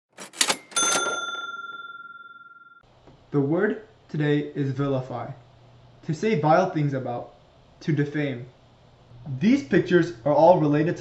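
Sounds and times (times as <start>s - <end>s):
bright bell ding: 0.7s - 2.8s.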